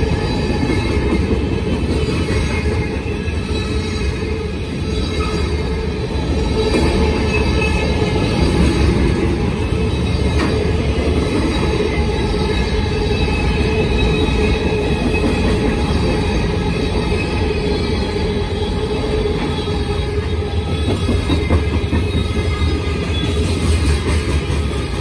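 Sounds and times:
steel wheels rumbling on rail: 0.0 - 25.0
high wheel squeal: 2.0 - 23.8.

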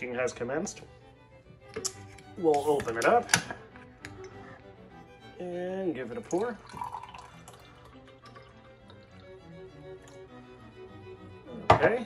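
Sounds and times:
soft slow background music: 0.0 - 12.0
juice pouring into a glass: 5.9 - 10.6.

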